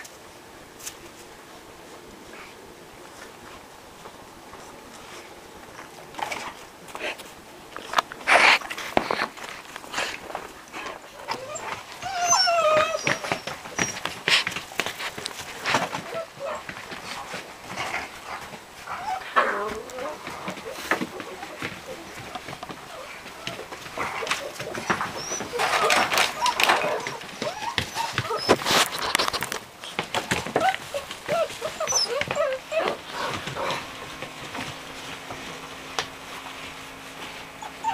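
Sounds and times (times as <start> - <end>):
scuffling: 0.8 - 37.9
puppy whimpering: 11.2 - 14.4, 15.7 - 16.7, 18.9 - 29.2, 30.3 - 33.6, 37.6 - 37.9.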